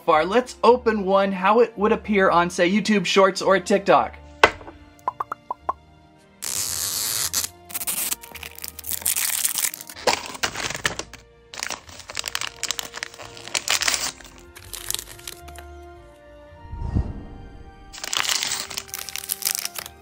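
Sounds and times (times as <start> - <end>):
background music: 0.0 - 20.0
plastic wrappers crackling: 7.7 - 15.7, 18.0 - 20.0.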